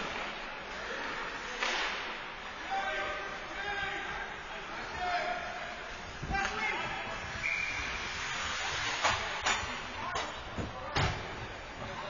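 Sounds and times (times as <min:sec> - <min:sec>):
ice rink background noise: 0:00.0 - 0:12.0.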